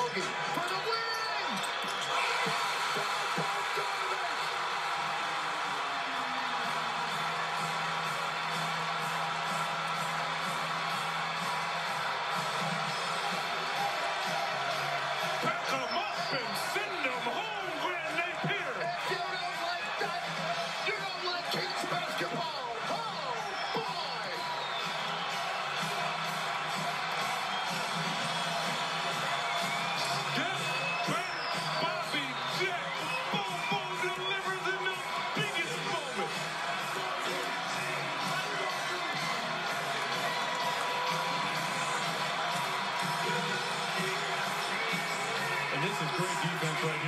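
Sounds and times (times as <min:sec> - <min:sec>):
crowd cheering and whooping: 0:00.0 - 0:47.0
music: 0:00.0 - 0:47.0.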